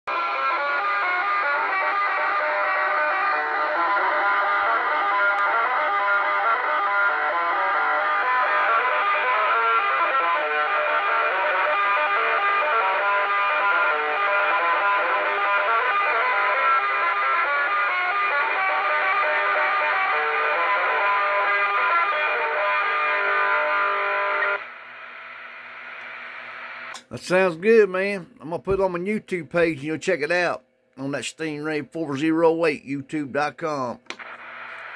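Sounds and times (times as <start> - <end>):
distorted electric guitar over radio: 1.5 - 27.9, 33.4 - 34.9.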